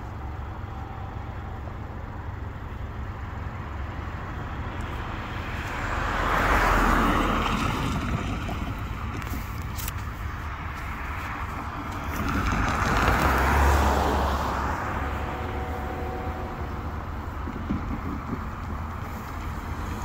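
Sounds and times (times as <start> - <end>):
steady traffic rumble: 0.0 - 20.0
vehicles passing: 0.0 - 20.0.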